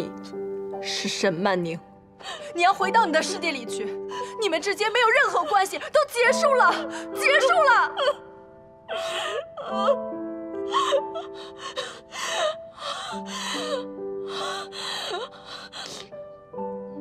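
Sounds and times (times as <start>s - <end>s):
soft background music: 0.0s - 17.0s
woman sobbing: 2.2s - 3.4s, 4.0s - 16.1s.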